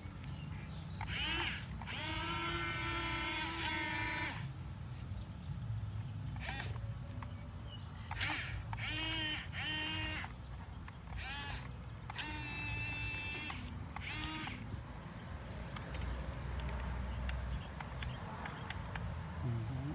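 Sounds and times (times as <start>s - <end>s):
toy excavator motors whining: 0.9s - 5.0s, 6.3s - 7.3s, 8.0s - 14.8s.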